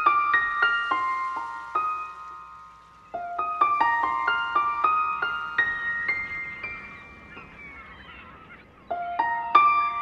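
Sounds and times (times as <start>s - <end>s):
piano notes ringing: 0.0s - 10.0s.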